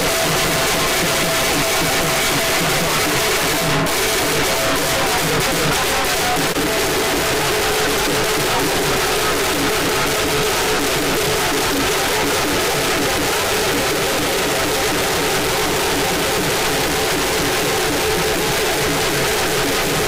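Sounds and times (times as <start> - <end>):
loud band dance music: 0.0 - 20.0.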